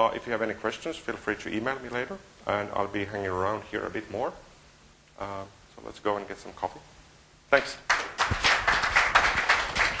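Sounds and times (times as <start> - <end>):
audience applauding: 7.9 - 10.0.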